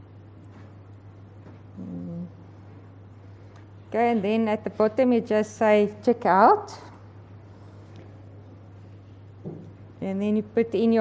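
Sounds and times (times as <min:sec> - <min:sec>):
low electrical hum: 0:00.0 - 0:11.0
woman humming: 0:01.8 - 0:02.5.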